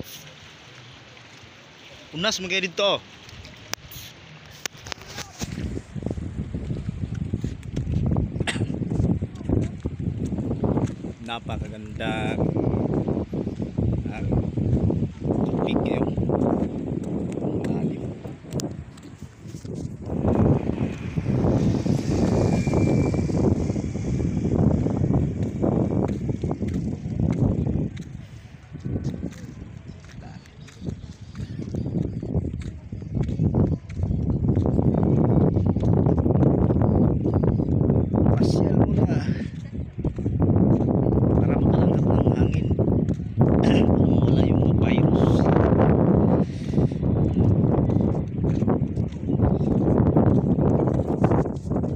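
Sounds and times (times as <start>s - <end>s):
wind on microphone: 3.2s - 51.9s.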